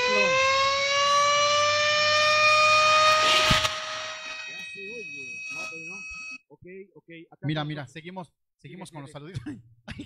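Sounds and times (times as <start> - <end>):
rising siren-like tone: 0.0 - 6.4.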